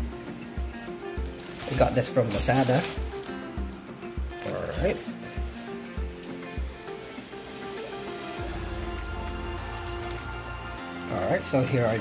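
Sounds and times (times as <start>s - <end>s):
background music with bass beat: 5.2s - 12.0s.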